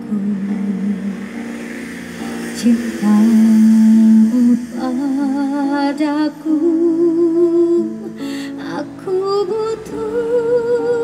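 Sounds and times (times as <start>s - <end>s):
woman singing with vibrato: 0.0s - 1.6s, 2.3s - 11.0s.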